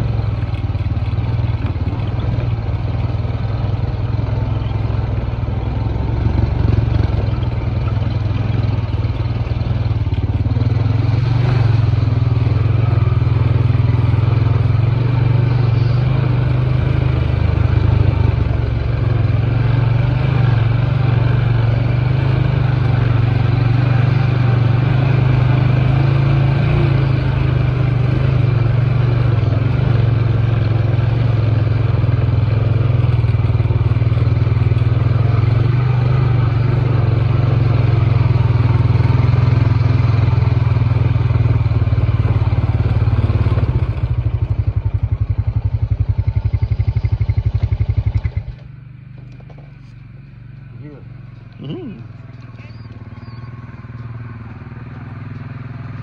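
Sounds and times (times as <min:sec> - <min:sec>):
atv engine running: 0:00.0 - 0:56.0.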